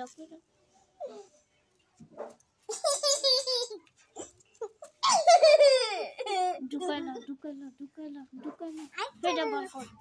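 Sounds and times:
child laughing: 2.7s - 6.6s.

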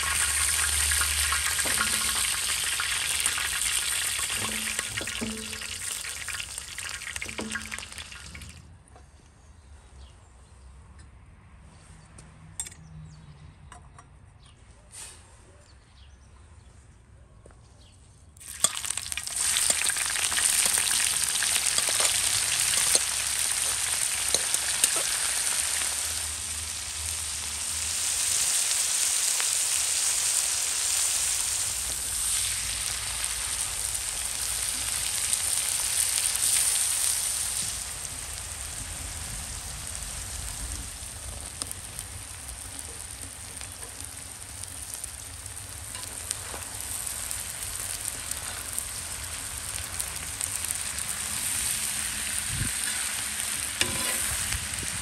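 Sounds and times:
onions sizzling in hot oil: 0.0s - 8.6s, 18.4s - 55.0s
metal spatula scraping pan: 53.8s - 54.5s.

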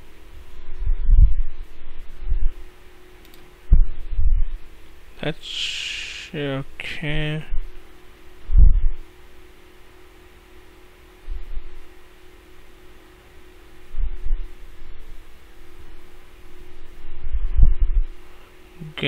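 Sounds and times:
low hum: 0.0s - 19.0s
dull low thumps: 0.5s - 2.6s, 3.7s - 4.7s, 8.4s - 9.0s, 16.7s - 18.2s.

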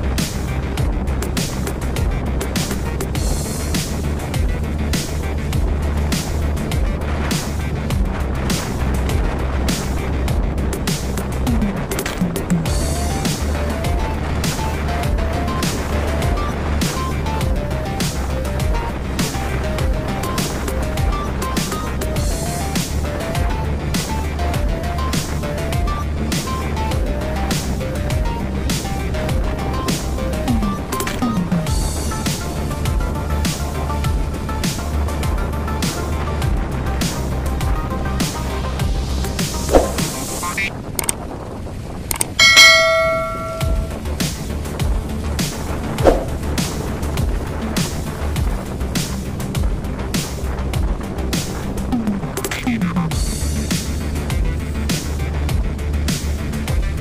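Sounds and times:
background music with drumbeat: 0.0s - 40.7s, 42.1s - 57.0s
quick clicks: 42.1s - 42.4s
bright bell ding: 42.4s - 44.0s.

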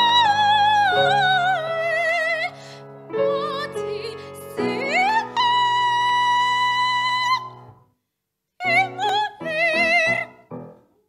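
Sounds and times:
piano accompaniment: 0.0s - 7.8s, 8.6s - 11.0s.

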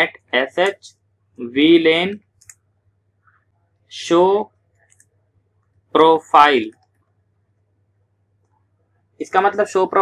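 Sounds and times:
person speaking: 0.0s - 2.5s, 3.9s - 4.5s, 6.0s - 6.7s, 9.2s - 10.0s.

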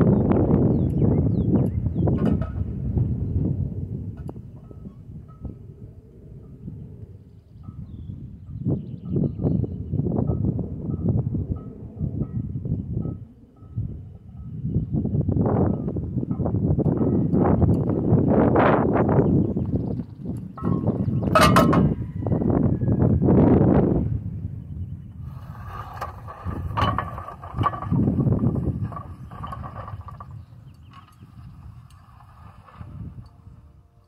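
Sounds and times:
wind buffeting microphone: 0.0s - 34.0s
metal handles clanking on ground: 20.4s - 22.0s, 26.6s - 28.1s.

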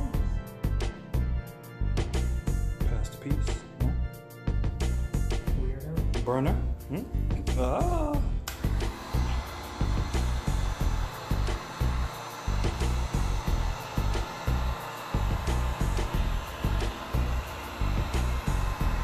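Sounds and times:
music with bass beat: 0.0s - 19.0s
heat gun blowing: 8.5s - 19.0s.

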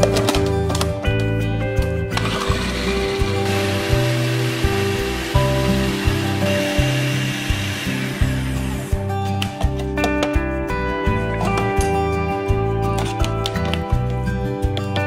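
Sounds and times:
plucked-string background music: 0.0s - 15.0s
food processor blade pureeing: 2.2s - 9.1s.

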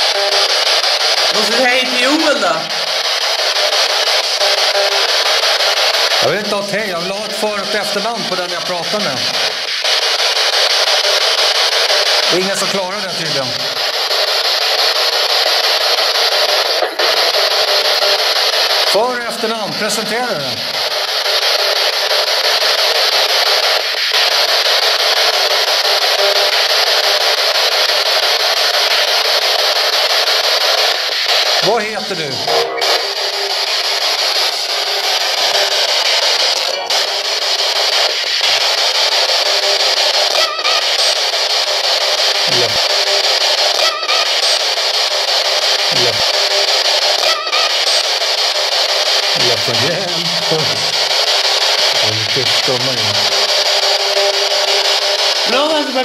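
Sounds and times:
radio static hiss: 0.0s - 56.0s
garbled voice snatches: 42.4s - 43.0s, 45.8s - 46.4s, 49.4s - 51.0s.

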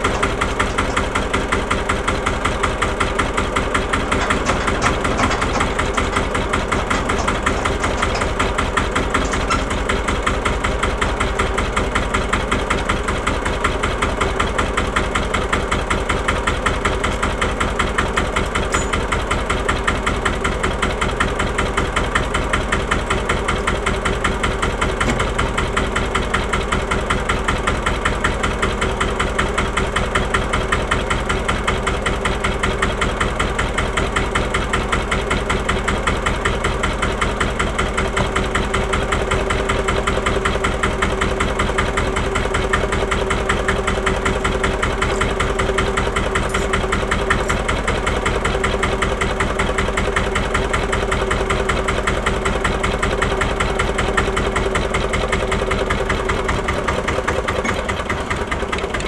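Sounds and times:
tractor diesel engine idling: 0.0s - 59.0s.

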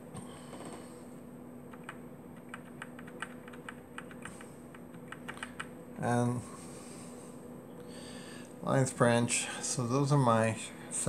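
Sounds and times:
steady low hum: 0.0s - 11.0s
computer keyboard key clicks: 1.7s - 4.4s, 5.0s - 5.7s.

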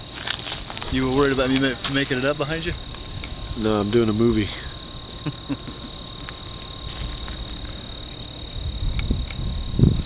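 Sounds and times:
crickets chirping: 0.0s - 10.0s
wind rumble on microphone: 2.7s - 3.7s, 7.0s - 10.0s.

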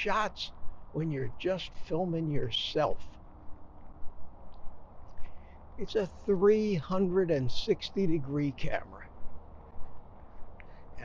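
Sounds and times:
low wind rumble: 0.0s - 11.0s
soft bumps of walking: 0.0s - 11.0s.

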